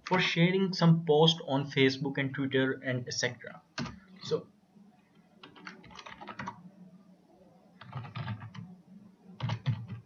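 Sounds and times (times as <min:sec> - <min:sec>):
computer keyboard typing: 0:03.8 - 0:04.0, 0:05.4 - 0:06.6, 0:07.8 - 0:08.7, 0:09.4 - 0:10.0.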